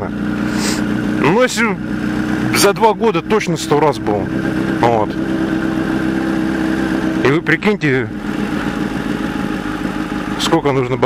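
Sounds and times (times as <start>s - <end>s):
motorcycle engine running at low revs: 0.0s - 11.0s.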